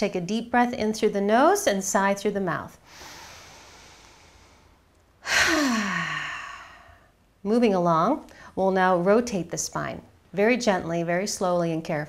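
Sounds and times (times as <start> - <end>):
woman breathing in: 2.8 - 7.2
woman sighing: 5.2 - 7.1.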